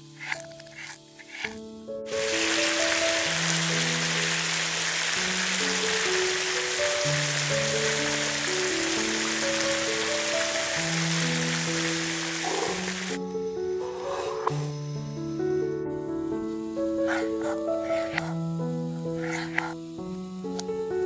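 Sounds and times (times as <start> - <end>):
slow background music: 0.0 - 21.0
chicken sizzling in a pan: 2.1 - 13.2, 16.4 - 21.0.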